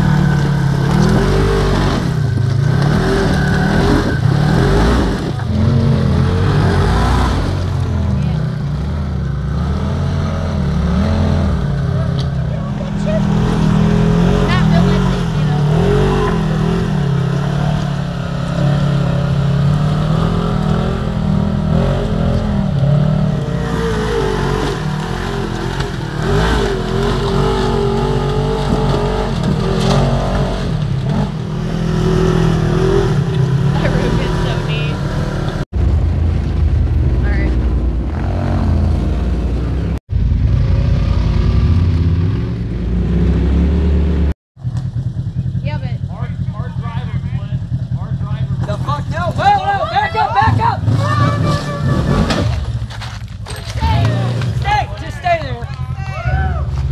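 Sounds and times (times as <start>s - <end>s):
off-road vehicle engine revving: 0.0s - 56.9s.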